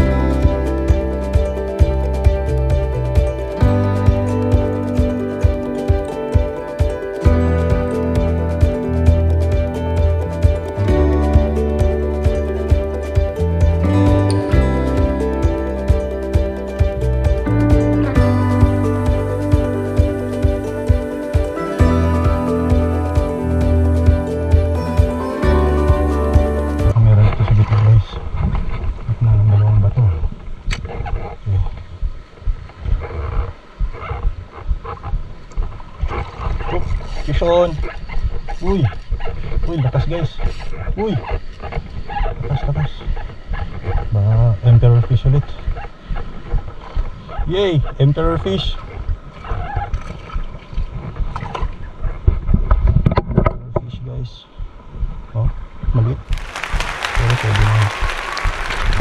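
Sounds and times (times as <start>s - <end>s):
background music: 0.0s - 27.0s, 56.3s - 59.0s
wind rumbling on microphone: 26.9s - 56.4s.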